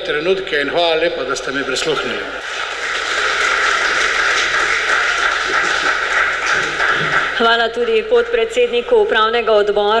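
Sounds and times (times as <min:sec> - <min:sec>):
audience applauding: 0:02.0 - 0:07.6.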